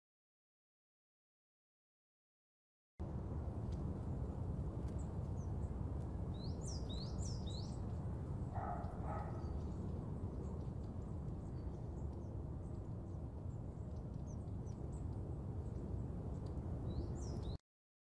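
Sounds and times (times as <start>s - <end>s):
low outdoor rumble: 3.0s - 17.6s.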